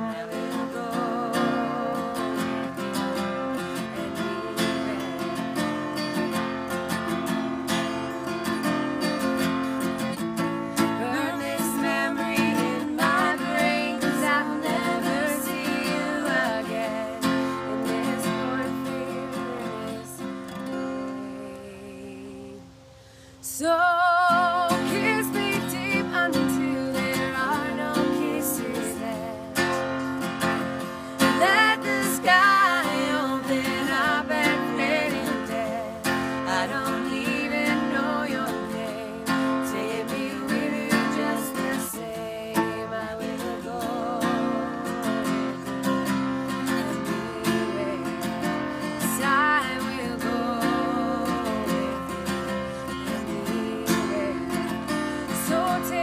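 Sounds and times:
acoustic guitar: 0:00.0 - 0:56.0
women singing folk song: 0:00.0 - 0:56.0.

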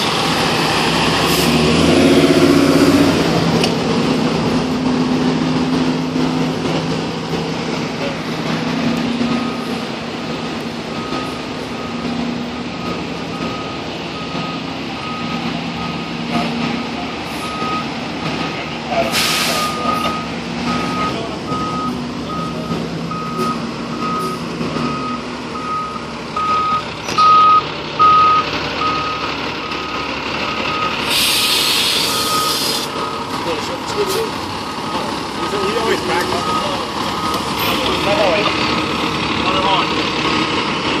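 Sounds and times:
diesel engine running: 0:00.0 - 0:41.0
back-up alarm beeping: 0:12.8 - 0:16.1, 0:19.6 - 0:29.3, 0:32.0 - 0:33.3, 0:34.8 - 0:38.4
air brake hiss: 0:19.1 - 0:19.8, 0:31.0 - 0:32.9.

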